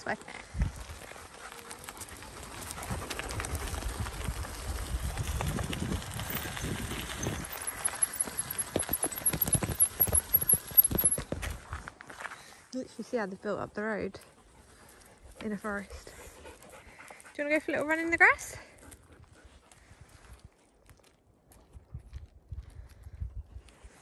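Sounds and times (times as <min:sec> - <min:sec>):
bike tyres crunching on gravel: 0:00.4 - 0:12.6.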